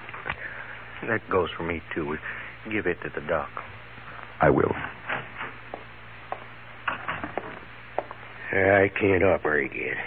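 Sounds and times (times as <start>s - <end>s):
old recording hum and hiss: 0.0s - 10.0s.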